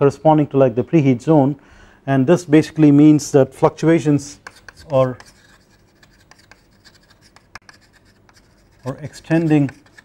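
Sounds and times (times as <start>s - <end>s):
chalk scratching on blackboard: 4.3s - 10.0s.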